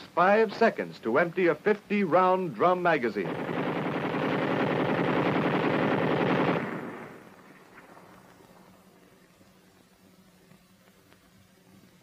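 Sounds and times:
faint steady hum: 0:00.0 - 0:12.0
submachine gun automatic burst: 0:03.1 - 0:08.4.

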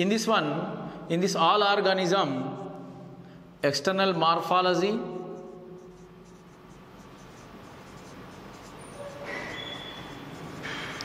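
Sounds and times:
marker writing on whiteboard: 0:04.4 - 0:11.0.

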